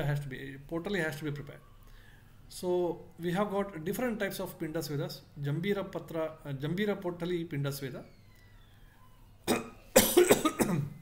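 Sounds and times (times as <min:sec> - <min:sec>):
man coughing: 0:09.5 - 0:11.0.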